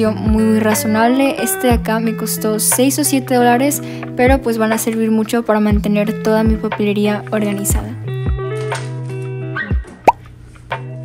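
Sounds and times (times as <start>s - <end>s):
instrumental background music: 0.0s - 11.0s.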